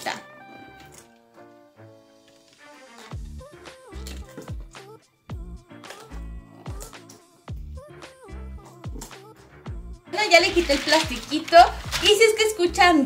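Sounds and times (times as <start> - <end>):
background music with steady beat: 0.0 - 13.0.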